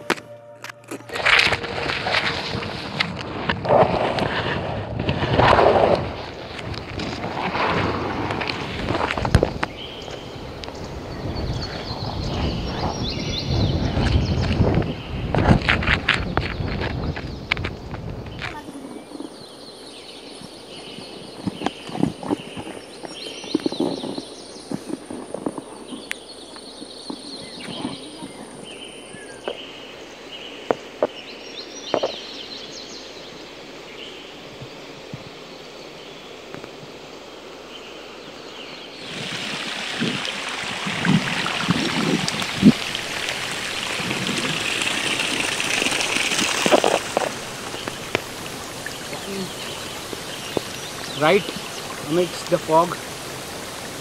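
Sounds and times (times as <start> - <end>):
rain hissing: 1.1 - 31.0, 33.3 - 54.0
birds chirping: 6.2 - 54.0.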